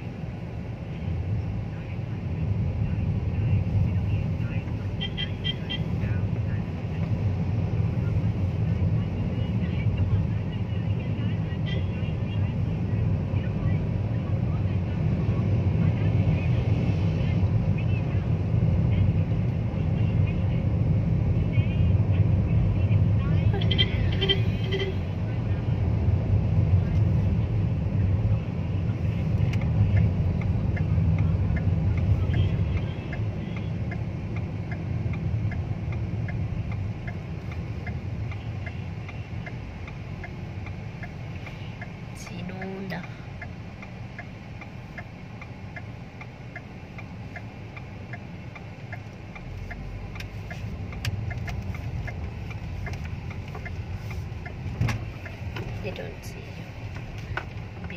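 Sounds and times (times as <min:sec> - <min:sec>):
car engine and road noise: 0:00.0 - 0:57.9
steady light ticking: 0:29.5 - 0:56.4.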